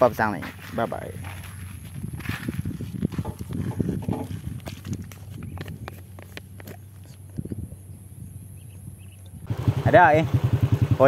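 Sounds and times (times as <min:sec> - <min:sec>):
camera handling knocks and rubbing: 0:03.0 - 0:07.6.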